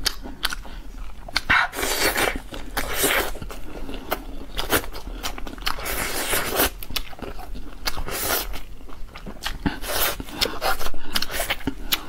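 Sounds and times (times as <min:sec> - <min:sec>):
chewing and biting: 0:00.0 - 0:12.0.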